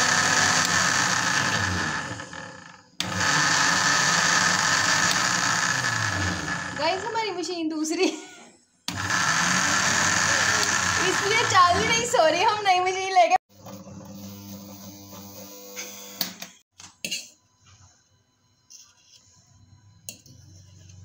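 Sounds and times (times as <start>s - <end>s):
blender motor running loudly: 0.0s - 7.4s, 8.9s - 12.6s, 13.5s - 16.6s.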